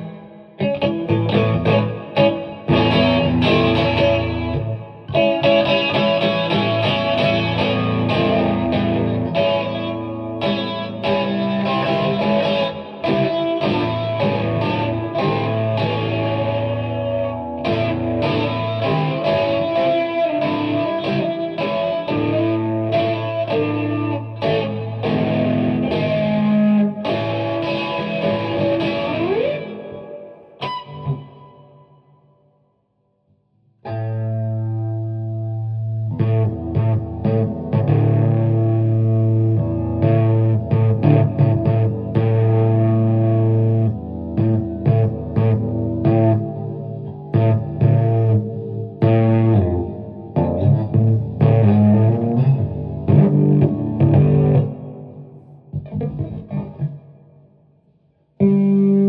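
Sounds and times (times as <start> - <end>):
distorted electric guitar: 0.0 - 32.0, 33.8 - 59.0.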